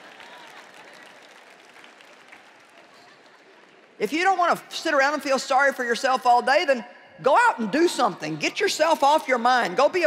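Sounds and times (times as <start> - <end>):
audience applauding: 0.0 - 4.0
faint crowd voices: 0.0 - 4.2.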